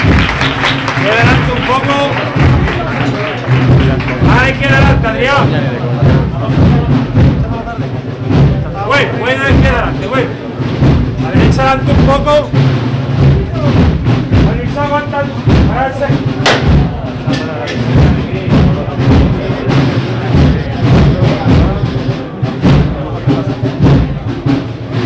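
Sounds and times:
drums beating: 0.0s - 25.0s
procession band music: 0.0s - 25.0s
voices: 0.0s - 25.0s.

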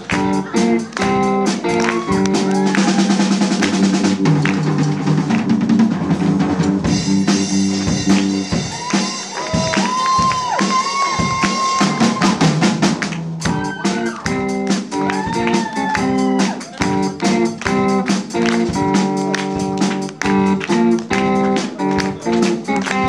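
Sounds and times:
drum kit fills: 0.0s - 23.0s
electric guitar: 0.0s - 23.0s.

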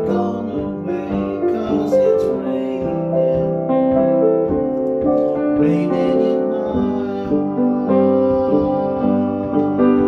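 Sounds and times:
slow piano ballad: 0.0s - 10.0s.

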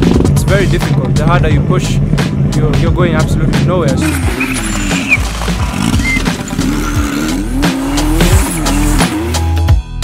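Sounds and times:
background music with a beat: 0.0s - 10.0s
car engine revving: 3.2s - 9.7s.

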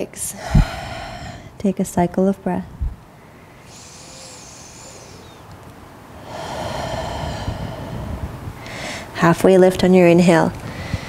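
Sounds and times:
woman breathing in and out: 0.2s - 1.6s, 3.1s - 5.5s, 6.1s - 9.2s, 10.6s - 11.0s.

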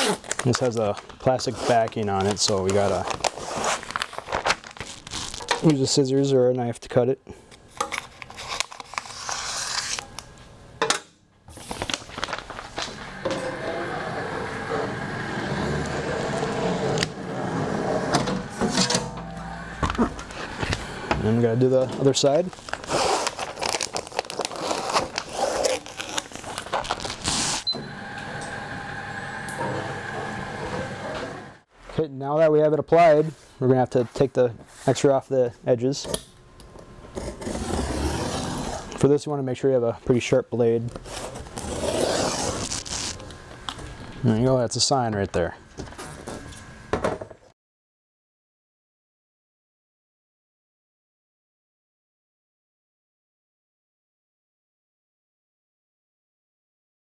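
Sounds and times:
plastic film crinkling: 0.0s - 5.7s, 11.5s - 13.0s, 22.0s - 27.6s, 42.3s - 43.3s
plastic film rustling: 0.0s - 5.8s, 11.5s - 13.0s, 22.0s - 27.6s, 41.0s - 43.3s.

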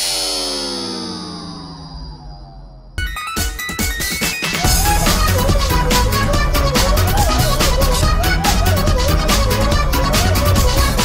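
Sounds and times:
descending synth sweep: 0.0s - 3.3s.

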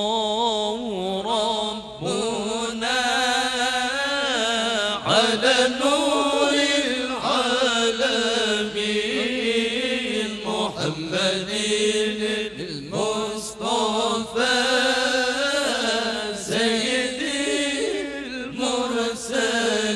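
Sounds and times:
men chanting together: 1.1s - 19.9s.

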